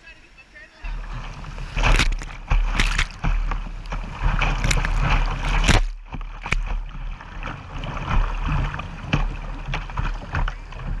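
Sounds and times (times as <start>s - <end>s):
rushing water: 0.0s - 11.0s
paddle stroke splashes: 0.7s - 11.0s.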